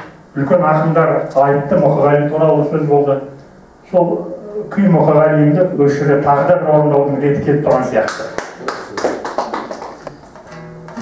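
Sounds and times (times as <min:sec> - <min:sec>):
people clapping lightly: 0:08.0 - 0:10.5.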